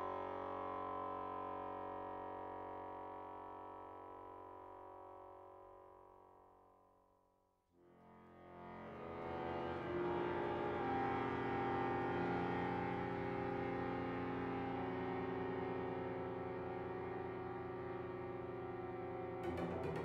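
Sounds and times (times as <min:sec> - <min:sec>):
accordion violin and cello chord: 0:08.1 - 0:20.0.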